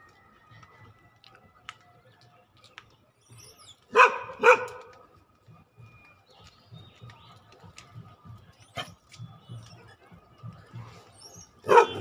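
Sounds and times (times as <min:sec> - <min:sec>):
dog barking: 0:03.9 - 0:04.9, 0:11.6 - 0:12.0.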